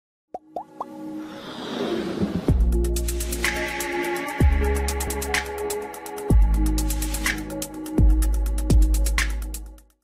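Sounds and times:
quick pops rising in pitch: 0:00.3 - 0:01.0
music: 0:00.4 - 0:10.0
whoosh: 0:01.2 - 0:02.8.

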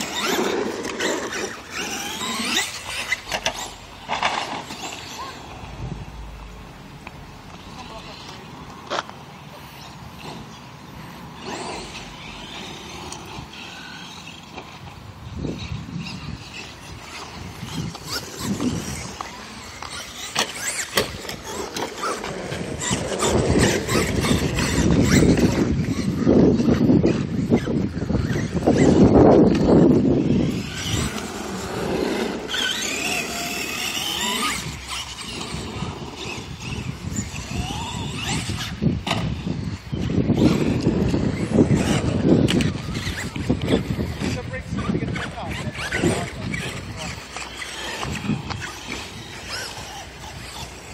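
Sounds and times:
wind buffeting microphone: 0:00.0 - 0:08.8, 0:09.6 - 0:50.9
rc trucks driving on asphalt: 0:00.0 - 0:50.9.

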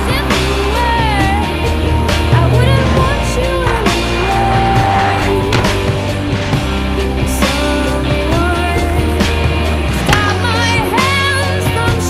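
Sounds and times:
song with singing: 0:00.0 - 0:12.0.

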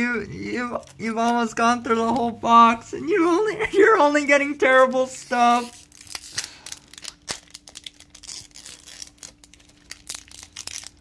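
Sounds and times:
foil wrapper crinkling: 0:04.7 - 0:11.0.

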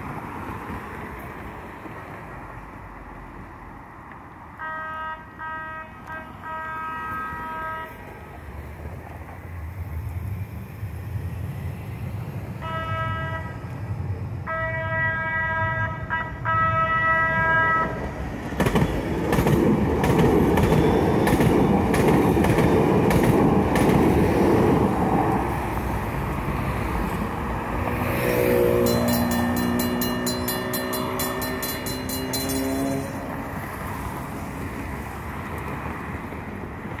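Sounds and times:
trolley horn blasts: 0:04.6 - 0:08.0, 0:12.6 - 0:13.6, 0:14.4 - 0:18.0, 0:28.6 - 0:33.6
trolley rumble and wheel clatter: 0:28.5 - 0:37.0.

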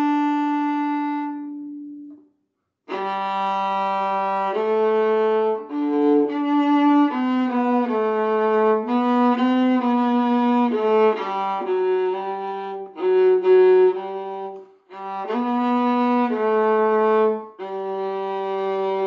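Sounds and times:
bowed violin melody: 0:00.0 - 0:02.2, 0:02.9 - 0:19.0.

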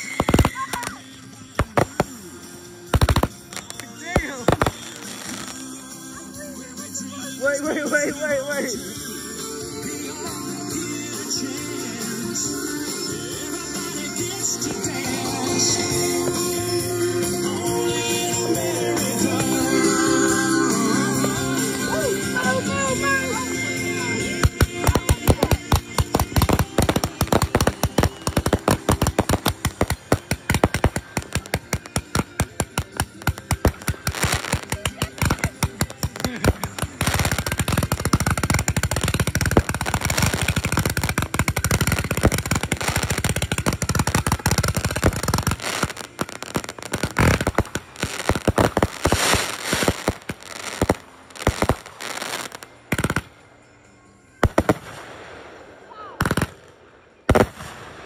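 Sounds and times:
fireworks cracking and banging: 0:00.0 - 0:06.0, 0:10.7 - 0:53.4, 0:54.4 - 0:58.0.

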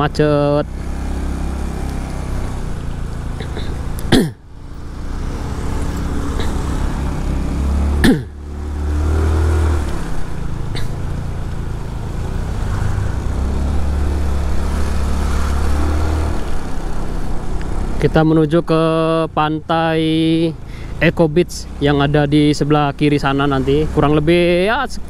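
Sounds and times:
road noise: 0:00.0 - 0:25.0.

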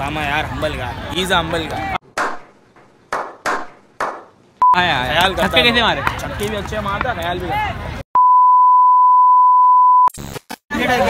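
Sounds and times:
men talking: 0:00.0 - 0:02.0, 0:04.7 - 0:07.8
test-tone beep: 0:08.2 - 0:10.1
static glitch noise: 0:10.0 - 0:10.6.

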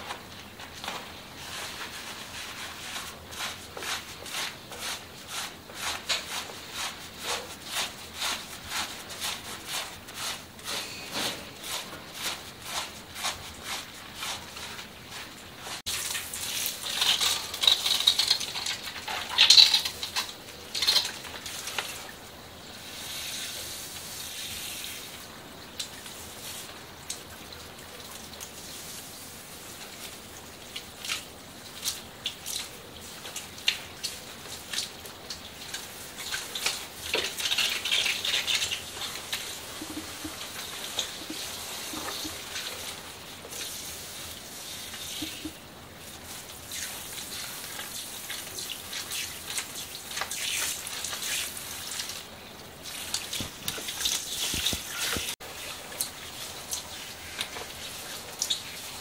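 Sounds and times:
hands working through foamy hair: 0:00.0 - 0:22.1, 0:29.6 - 0:59.0
shower water splashing into basin: 0:00.8 - 0:59.0.

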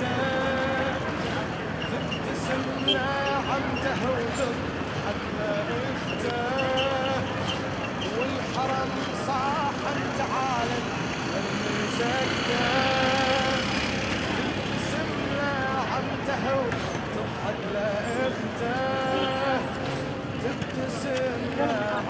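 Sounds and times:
crowd walking along a road: 0:00.0 - 0:22.0
voices calling out in long tones: 0:00.0 - 0:22.0.

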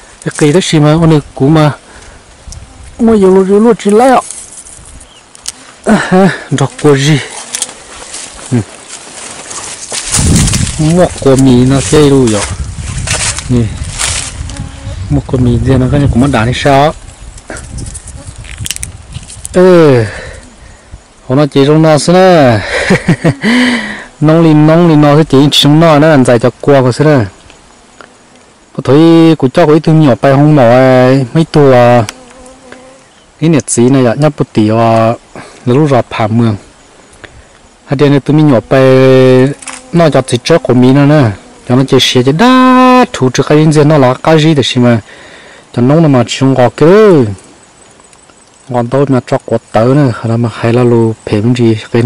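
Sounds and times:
man talking: 0:00.2 - 0:01.8, 0:03.0 - 0:04.4, 0:05.8 - 0:07.7, 0:08.4 - 0:08.8, 0:10.7 - 0:12.6, 0:13.4 - 0:13.8, 0:15.1 - 0:17.0, 0:19.5 - 0:20.4, 0:21.2 - 0:27.4, 0:28.8 - 0:32.1, 0:33.4 - 0:36.6, 0:37.9 - 0:45.1, 0:45.8 - 0:47.4, 0:48.7 - 0:52.0
flying insect buzzing: 0:01.8 - 0:21.3, 0:27.1 - 0:29.2, 0:30.8 - 0:33.4, 0:36.6 - 0:43.8
person speaking: 0:03.0 - 0:04.5, 0:05.4 - 0:17.0, 0:21.3 - 0:27.4, 0:37.9 - 0:45.1.

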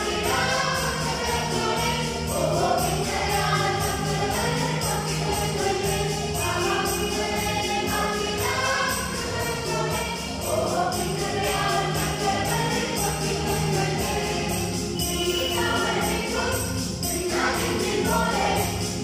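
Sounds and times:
mixed choir singing a carol: 0:00.0 - 0:19.0.

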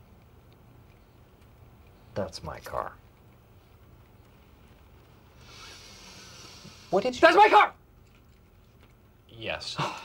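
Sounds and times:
soft hiss: 0:00.0 - 0:07.3.

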